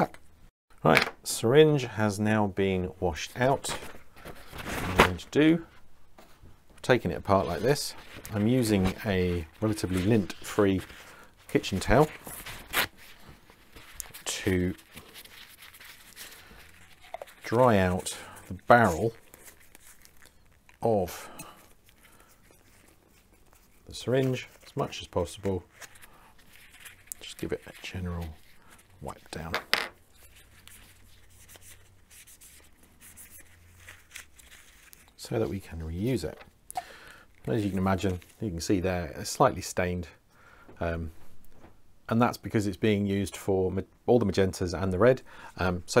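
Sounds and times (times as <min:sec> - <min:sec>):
paper towel rustle: 0:03.6 - 0:36.4.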